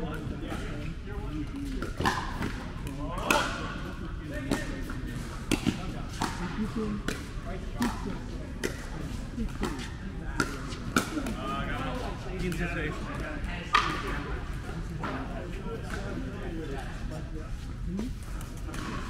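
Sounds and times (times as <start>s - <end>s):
paddles hitting plastic ball: 4.5s - 6.4s.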